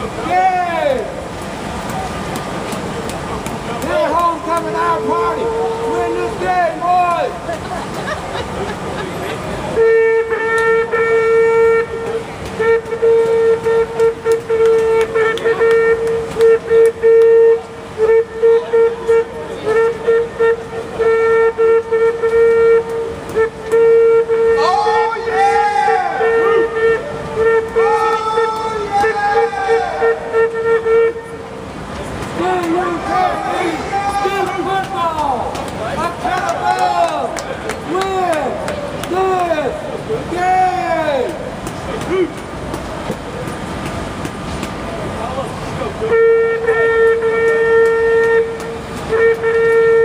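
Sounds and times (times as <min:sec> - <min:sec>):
voices: 0:00.0 - 0:50.0
horn sounding a steady note: 0:03.0 - 0:07.6, 0:09.4 - 0:41.6, 0:44.4 - 0:50.0.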